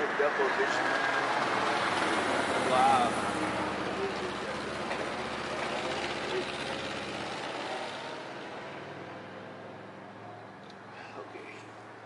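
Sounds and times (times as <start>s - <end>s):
motor vehicle passing: 0.0s - 12.0s.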